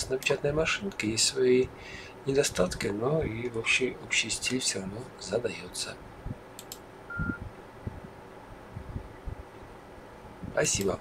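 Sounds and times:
computer mouse clicks: 6.6s - 6.8s.

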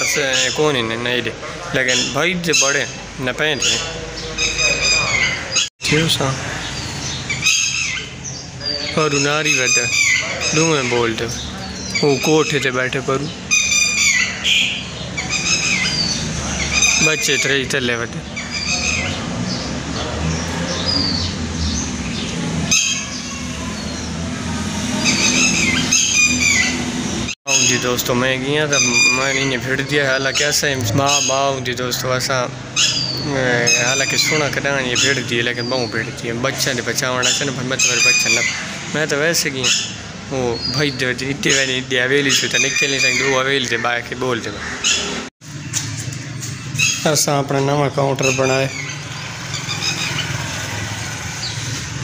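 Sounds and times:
man talking: 0.0s - 5.2s, 5.8s - 6.6s, 8.6s - 13.4s, 16.9s - 18.3s, 27.5s - 44.7s, 47.0s - 48.8s
birds chirping and calling: 0.0s - 52.0s
chicken squawking: 1.4s - 5.7s, 8.8s - 12.8s, 13.4s - 17.5s, 28.7s - 31.6s.

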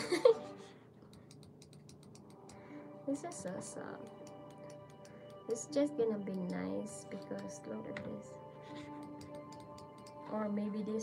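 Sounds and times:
fingers tapping on trackpad: 1.0s - 2.7s, 3.4s - 5.4s, 8.8s - 10.3s.

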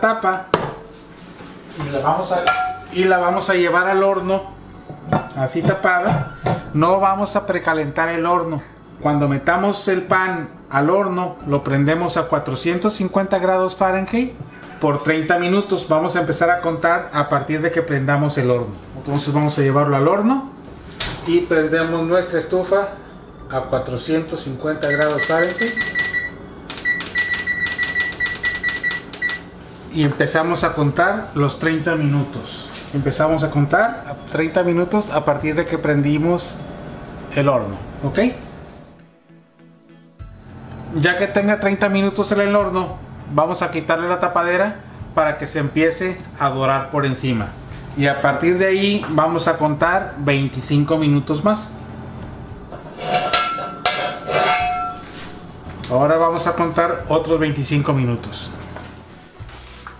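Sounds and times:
oven control panel beeping: 24.7s - 29.5s
ringing metallic strikes: 53.1s - 55.1s.

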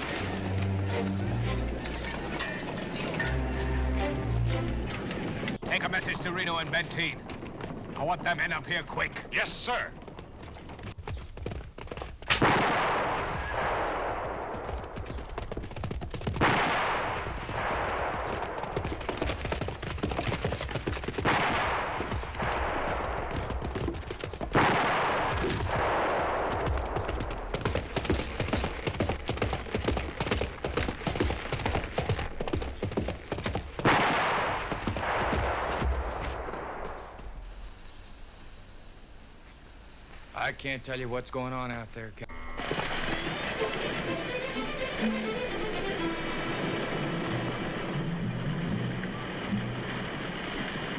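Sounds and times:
rapid gunfire crackling: 6.4s - 37.4s, 42.6s - 44.6s, 45.9s - 50.9s.

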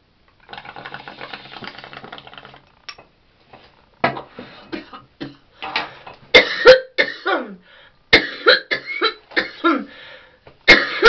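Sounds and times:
water bubbling in a bong: 0.3s - 3.0s.

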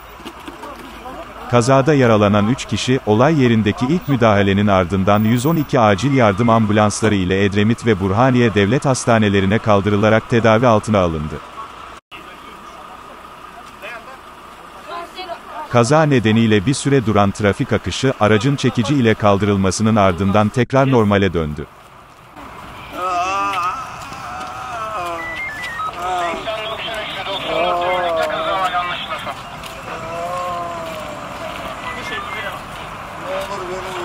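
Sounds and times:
vehicle engine idling: 0.0s - 20.6s
people talking over one another: 0.0s - 21.7s, 23.0s - 34.0s
indistinct voices: 0.4s - 21.7s, 22.9s - 34.0s
high electronic beeps: 5.2s - 7.0s, 25.1s - 27.6s.

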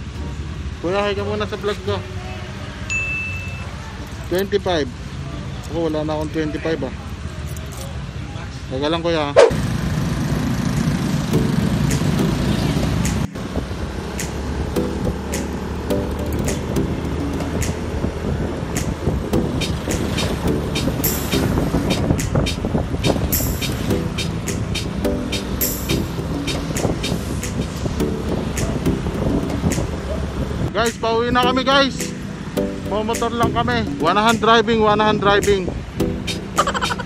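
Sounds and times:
motorcycle engine running: 9.4s - 18.3s
background music with ticking beat: 10.7s - 13.5s, 14.1s - 18.1s, 18.7s - 30.1s, 30.9s - 34.6s, 35.2s - 37.0s.

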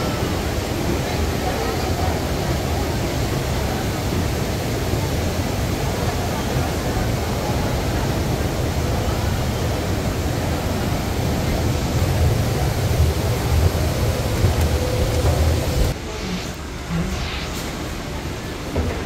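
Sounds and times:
wind buffeting microphone: 10.5s - 19.0s.

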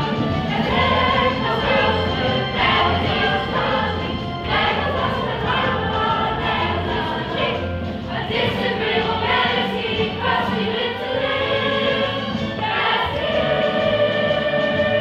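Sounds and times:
ensemble singing as a choir: 0.0s - 15.0s.

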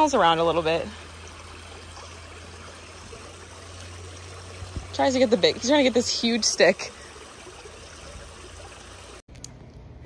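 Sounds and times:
creek water running over rocks: 0.0s - 9.2s
outdoor hush: 0.0s - 10.0s.

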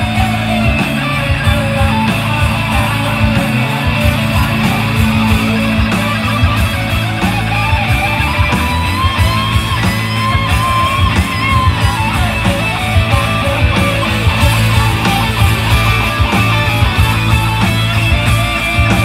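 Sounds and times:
electric guitar: 0.0s - 19.0s
keyboards: 0.0s - 19.0s.

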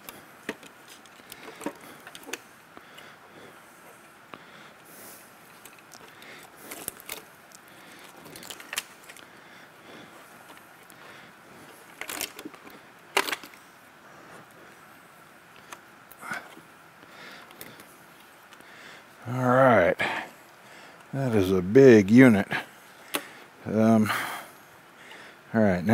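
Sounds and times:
cables rustling: 0.0s - 19.3s.

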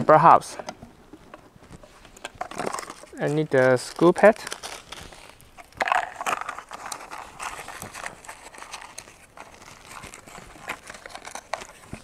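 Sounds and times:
packaging rustling and crinkling: 1.1s - 12.0s.

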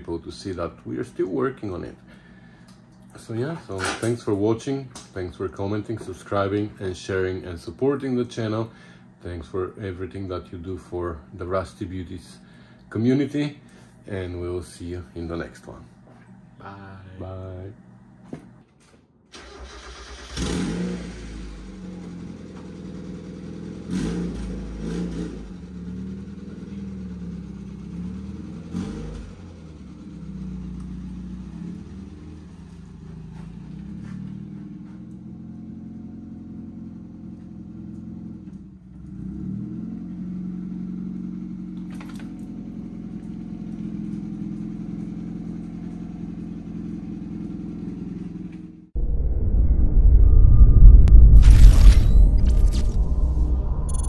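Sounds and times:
car engine starting and revving: 19.3s - 41.9s, 51.0s - 54.0s.

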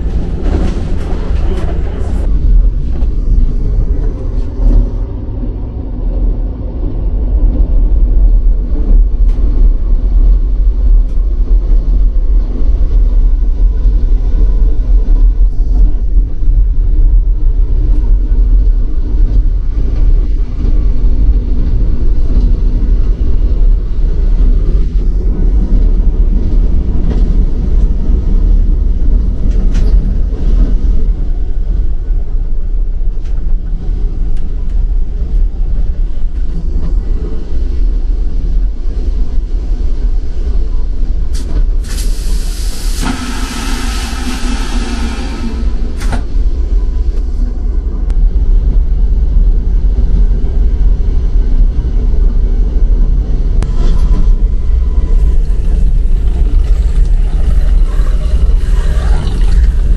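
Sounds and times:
train rumbling on rails: 0.0s - 59.9s.

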